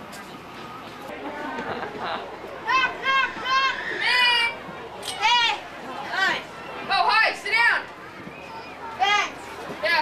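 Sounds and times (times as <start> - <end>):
children calling out: 2.6 - 4.6.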